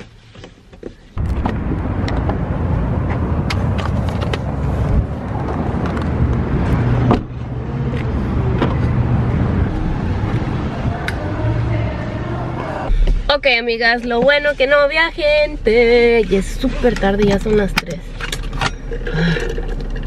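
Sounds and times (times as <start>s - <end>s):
traffic rumble: 0.0s - 20.0s.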